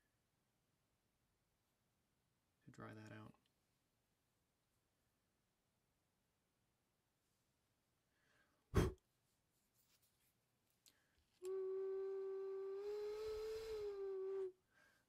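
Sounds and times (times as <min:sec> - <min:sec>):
ocarina note: 0:11.4 - 0:14.5
breath hiss: 0:12.6 - 0:15.0.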